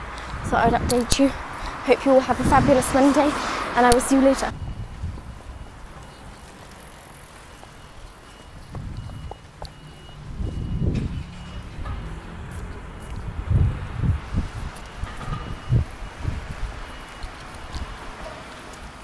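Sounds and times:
wind rumbling on microphone: 0.0 - 6.6, 8.0 - 19.0
faint street noise: 0.0 - 19.0.

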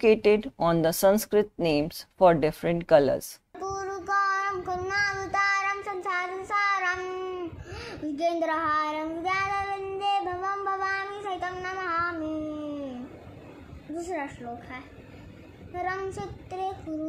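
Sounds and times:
child breathing in: 7.6 - 8.1.

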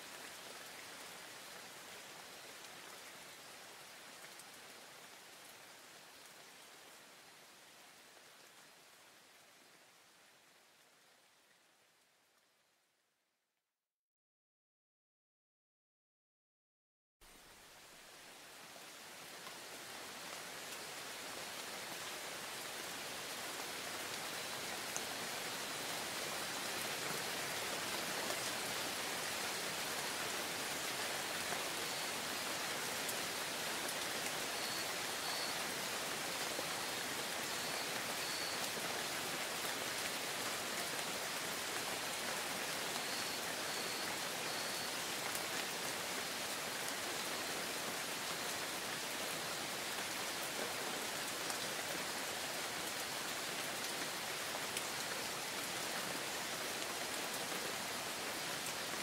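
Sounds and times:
steady rain falling: 0.0 - 13.0, 17.2 - 59.0.

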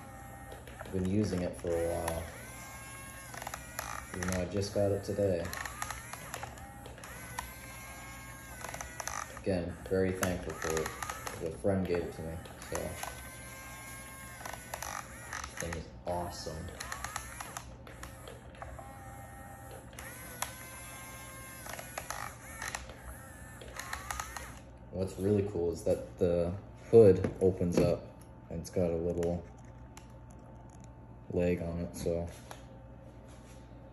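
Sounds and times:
toy electric motors whining: 0.0 - 28.0, 28.7 - 31.7
scattered clicks: 29.1 - 31.0.

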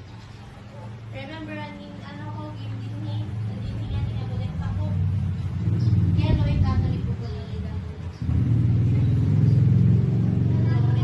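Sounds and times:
steady low rumble: 0.0 - 11.0
voices talking: 0.0 - 11.0.

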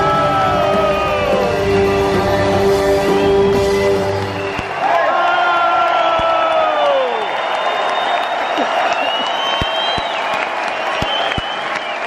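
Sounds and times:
audience applauding: 0.0 - 12.0
high long-held whistles: 7.0 - 12.0.

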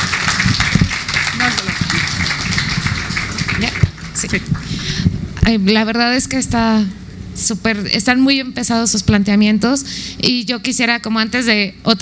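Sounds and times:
audience applauding: 0.0 - 4.8
voices: 1.2 - 2.3.

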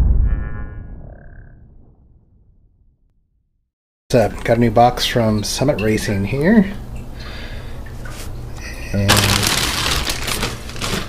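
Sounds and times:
deep rumbling boom: 0.0 - 3.6.

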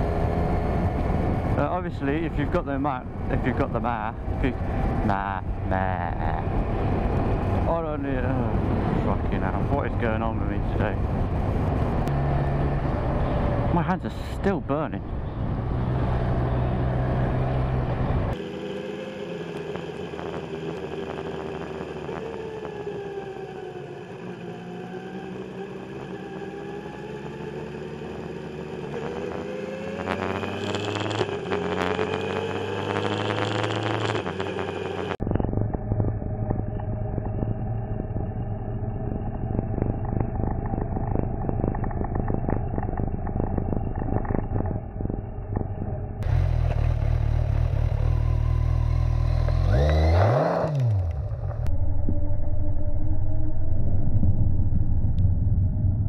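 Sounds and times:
motorcycle engine revving: 0.0 - 14.2, 14.8 - 51.7
muffled vehicle rumble: 0.0 - 56.0.

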